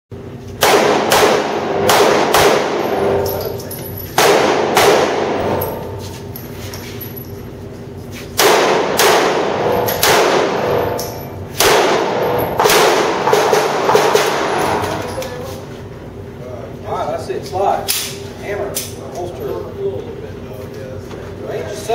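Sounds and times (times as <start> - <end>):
handgun shots echoing: 0.6 - 5.8, 8.4 - 15.1.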